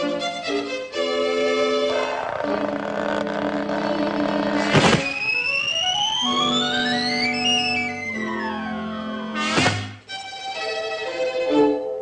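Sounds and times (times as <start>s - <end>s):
cartoon buzzing whir: 1.9s - 8.7s
rising whistle: 5.0s - 8.8s.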